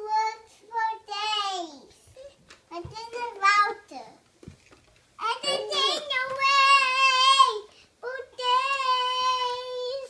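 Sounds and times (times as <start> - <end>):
girl singing blues: 5.2 - 10.0.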